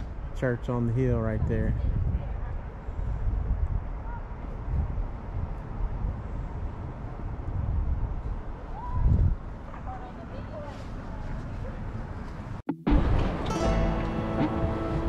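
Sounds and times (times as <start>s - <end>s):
wind buffeting microphone: 0.0s - 10.7s.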